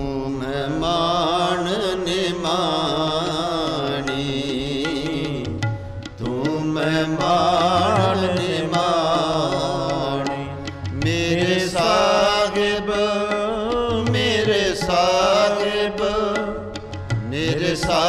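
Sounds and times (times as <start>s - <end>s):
harmonium: 0.0s - 18.0s
person singing ornamented phrases: 0.0s - 18.0s
tabla: 0.0s - 18.0s.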